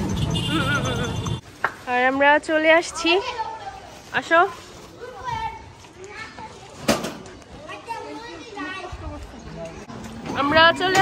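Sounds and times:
children calling and chattering: 0:02.1 - 0:11.0.

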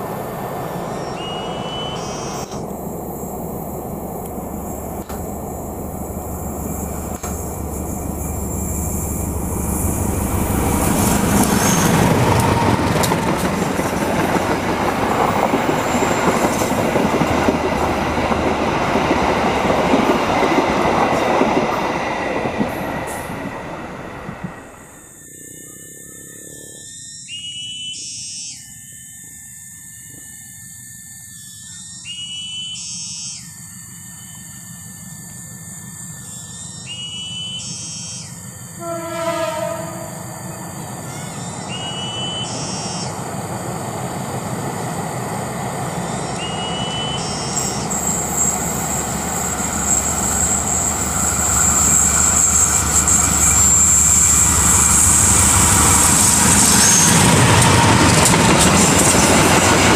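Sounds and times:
train wheels on rails: 0:00.0 - 0:26.3, 0:37.9 - 0:59.9
diesel locomotive engine: 0:00.0 - 0:27.4, 0:30.1 - 0:59.9
train horn blast: 0:38.7 - 0:40.6.

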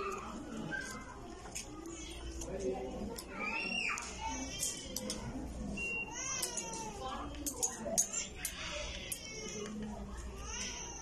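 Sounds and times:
low steady background hum: 0:00.0 - 0:11.0.

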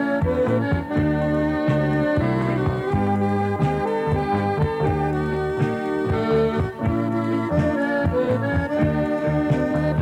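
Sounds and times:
accordion folk music: 0:00.0 - 0:10.0.

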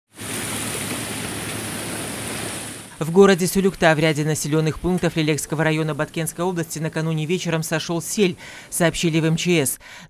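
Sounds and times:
rushing mudflow torrent: 0:00.1 - 0:09.8.

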